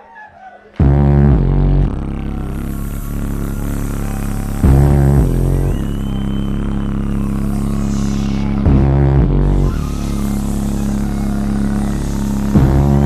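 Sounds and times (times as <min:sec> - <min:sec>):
vocal electronic groove: 0:00.0 - 0:13.0.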